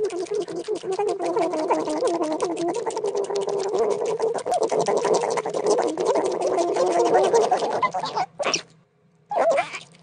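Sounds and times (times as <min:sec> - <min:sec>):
guinea pigs chewing leaf: 0:00.0 - 0:08.7.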